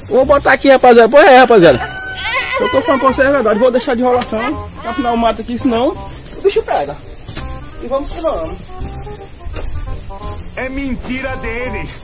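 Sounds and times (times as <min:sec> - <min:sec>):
insect drone: 0:00.0 - 0:12.0
hand tool chopping weeds: 0:06.1 - 0:12.0.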